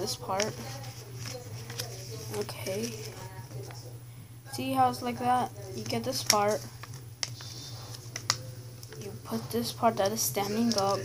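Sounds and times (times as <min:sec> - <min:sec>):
paper creasing and crinkling: 0:00.0 - 0:03.9, 0:05.6 - 0:11.0
steady low hum: 0:00.0 - 0:11.0.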